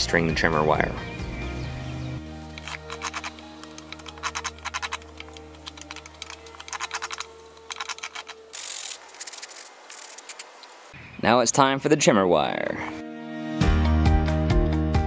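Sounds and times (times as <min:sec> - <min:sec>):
blade clicking and scraping wood: 0:02.6 - 0:10.6.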